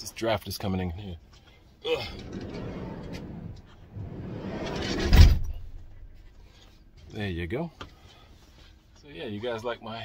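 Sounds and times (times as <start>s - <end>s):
van door rubbing and slamming: 2.1s - 5.8s.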